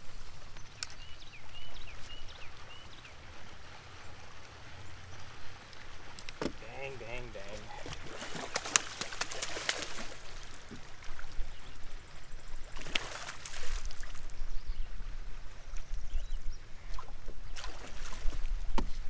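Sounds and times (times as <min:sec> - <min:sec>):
fish splashing in water: 0:07.5 - 0:11.3, 0:12.7 - 0:14.3, 0:17.0 - 0:18.5.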